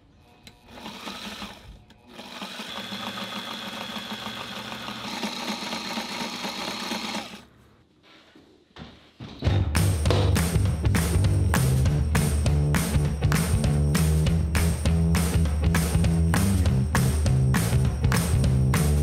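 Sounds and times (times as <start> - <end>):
sewing machine stitching: 0.6 - 7.4
loud music: 9.5 - 19.0.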